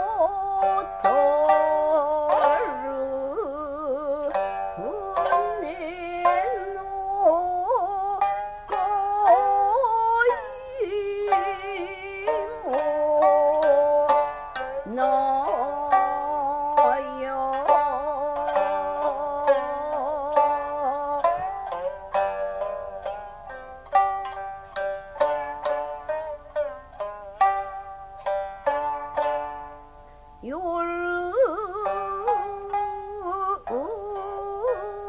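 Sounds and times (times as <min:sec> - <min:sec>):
woman singing: 0:00.0 - 0:23.1, 0:30.4 - 0:35.0
shamisen plucked: 0:00.0 - 0:35.0.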